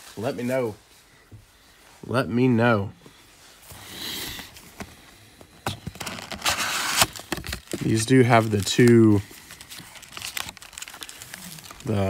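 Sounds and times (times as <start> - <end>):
cardboard tearing or sliding: 5.9 - 7.8.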